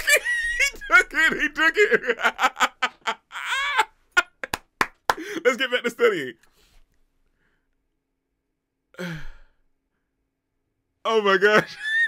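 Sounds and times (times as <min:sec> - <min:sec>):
man sighing: 0:05.1 - 0:05.4, 0:08.9 - 0:09.6.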